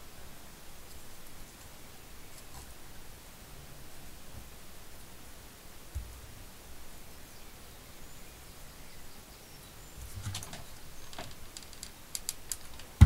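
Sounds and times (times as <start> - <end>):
light clicks and taps of craft pieces: 10.3 - 13.0.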